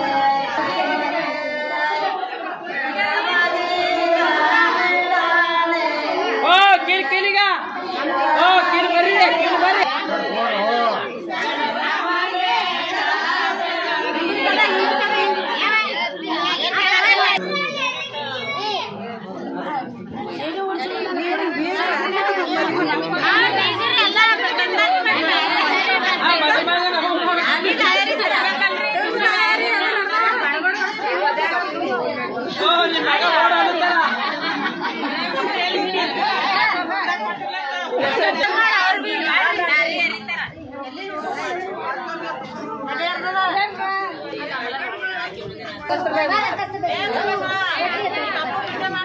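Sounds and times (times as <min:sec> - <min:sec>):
women's crowd chatter: 0:00.0 - 0:49.0.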